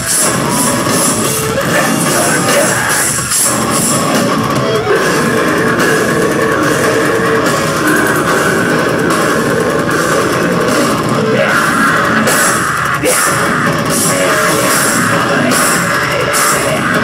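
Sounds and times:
distorted electric guitars: 0.0 - 17.0
drum kit: 0.0 - 17.0.

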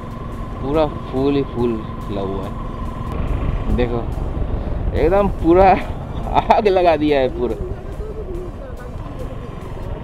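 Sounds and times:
faint melody: 0.0 - 10.0
motorcycle engine: 0.0 - 10.0
wind on microphone: 3.1 - 8.9.

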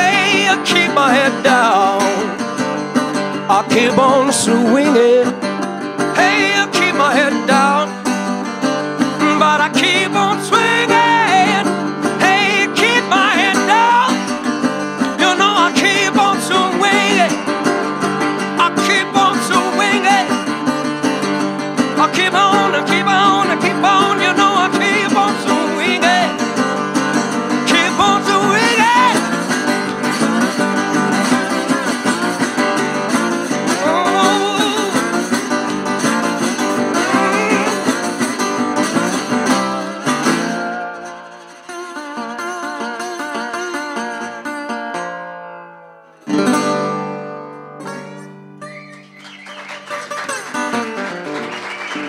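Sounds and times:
resonator guitar: 0.0 - 52.0
strummed guitar chords: 0.0 - 52.0
man wailing with vibrato: 37.0 - 37.9.

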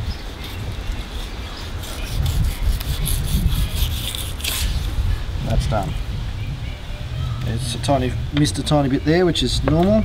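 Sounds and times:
knife scraping fish skin: 0.4 - 4.9.

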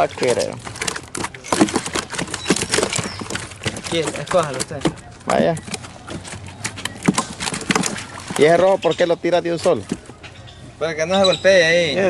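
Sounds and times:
fish slapping in a tub: 0.0 - 10.2.

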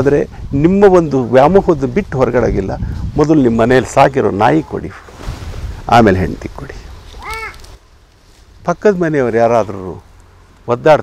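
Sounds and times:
crow cawing: 7.2 - 7.6.

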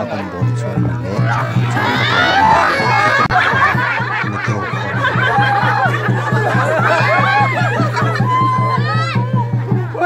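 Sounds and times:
voices: 0.0 - 10.0
music with quick beat: 0.5 - 10.0
crowd laughing: 1.0 - 10.0.

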